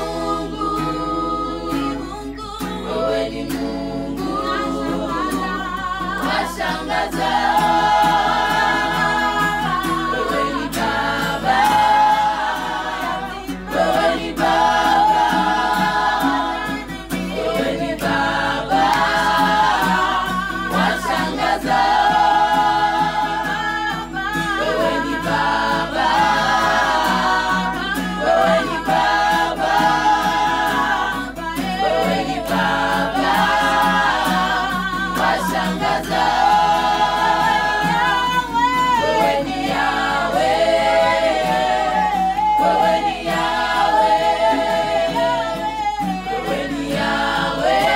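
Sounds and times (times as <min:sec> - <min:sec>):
women's choir singing a cappella: 0:00.0 - 0:47.9.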